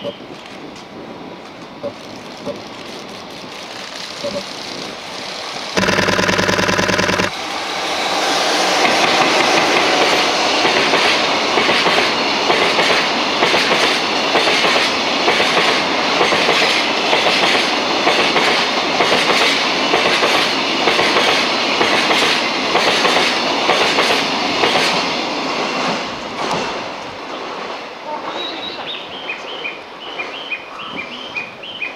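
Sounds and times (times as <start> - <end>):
train wheels clattering over rail joints: 8.8 - 25.1.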